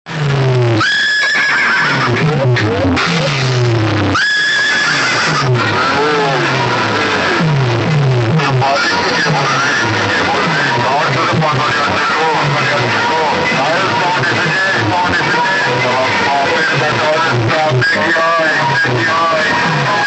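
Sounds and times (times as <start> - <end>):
loud effects track on loudspeakers: 0.0 - 20.0
falling bass sweeps: 0.1 - 20.0
high shrill cry: 0.8 - 2.1, 4.1 - 6.4.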